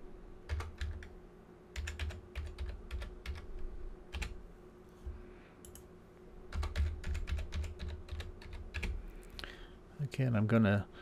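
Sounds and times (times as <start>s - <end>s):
faint steady hum: 0.0s - 11.0s
keyboard typing: 0.5s - 1.1s, 1.8s - 4.4s, 6.5s - 9.0s.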